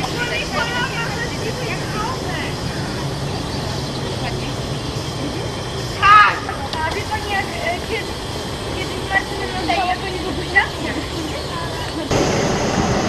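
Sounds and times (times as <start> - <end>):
faint voices talking: 0.0 - 13.0
steady low hum: 0.0 - 13.0.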